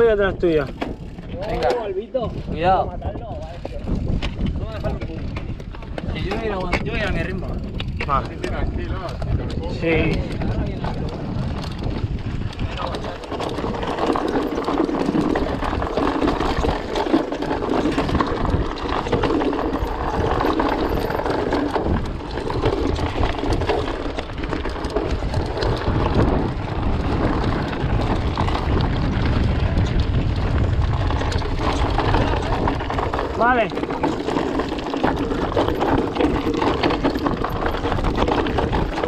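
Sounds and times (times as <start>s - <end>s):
bike rattling and clattering: 0.0s - 39.0s
wind noise on microphone: 0.0s - 39.0s
tyres crunching over loose rock: 2.5s - 39.0s.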